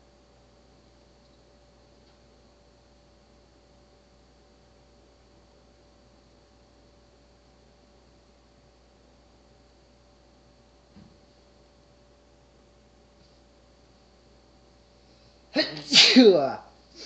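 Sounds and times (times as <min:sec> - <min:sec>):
faint hiss and hum: 0:00.0 - 0:17.0.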